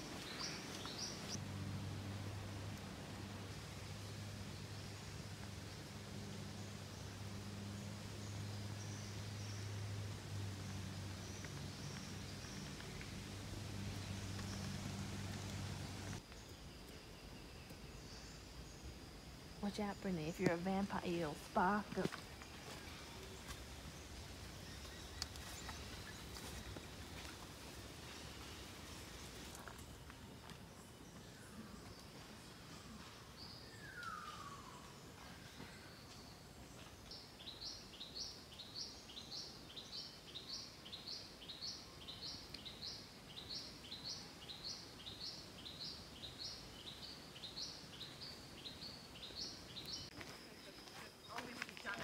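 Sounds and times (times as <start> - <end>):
rainforest ambience: 0.0 - 52.0.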